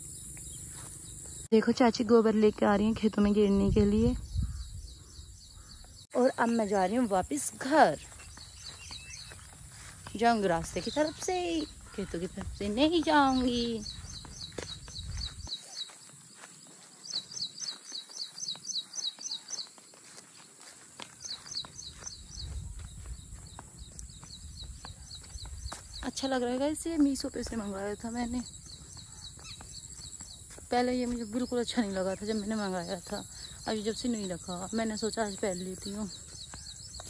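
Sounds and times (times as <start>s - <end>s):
songbird calling: 0.0s - 37.0s
footsteps on grass: 6.8s - 37.0s.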